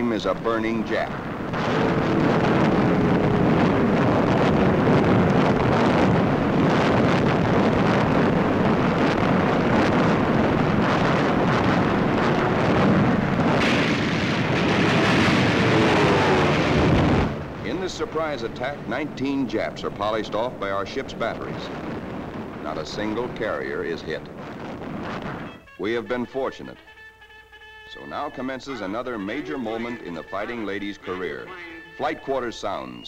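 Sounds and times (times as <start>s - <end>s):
shells bursting: 0.9s - 7.4s, 10.3s - 25.7s
anti-aircraft gunfire: 0.9s - 25.5s.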